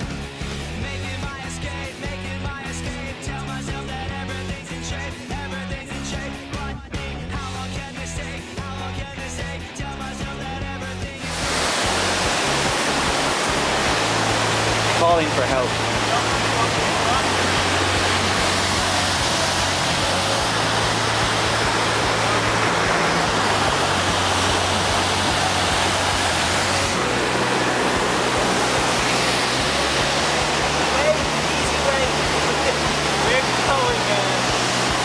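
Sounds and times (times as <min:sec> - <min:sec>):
water rushing over boulders: 0:11.2 - 0:35.0.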